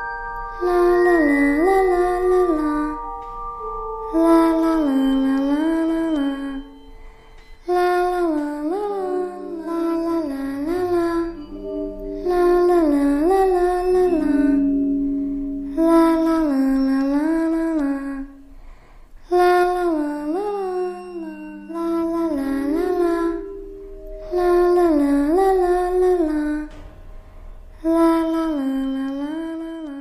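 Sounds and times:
person humming a slow tune: 0.0 - 26.9, 27.7 - 30.0.

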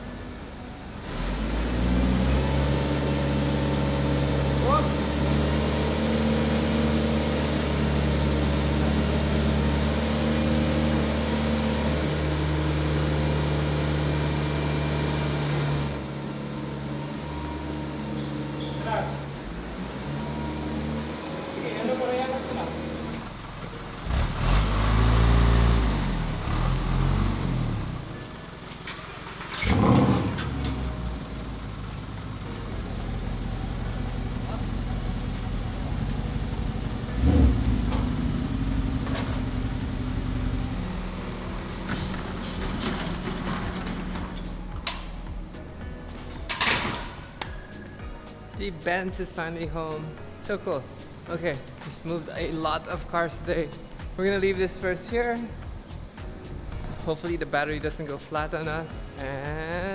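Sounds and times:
truck engine revving: 1.0 - 28.2, 29.0 - 32.4, 33.0 - 44.7
truck engine idling: 26.4 - 45.0.

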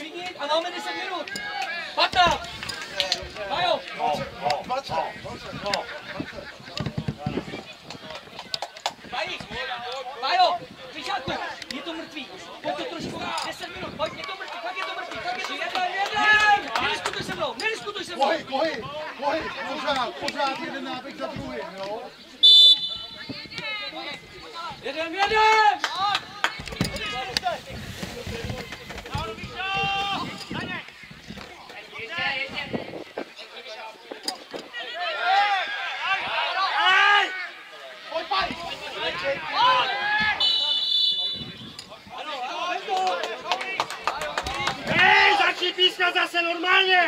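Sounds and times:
footballers calling out: 0.0 - 47.0.

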